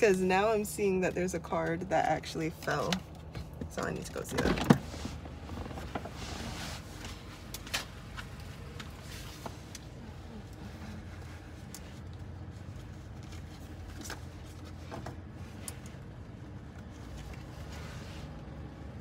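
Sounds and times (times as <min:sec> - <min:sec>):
low hum inside car: 0:00.0 - 0:19.0.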